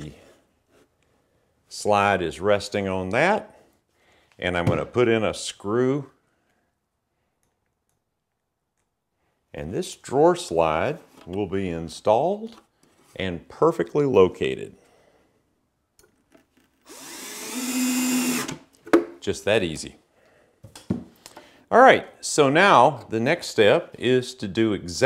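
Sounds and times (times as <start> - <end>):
drill motor whine: 16.9 - 18.6.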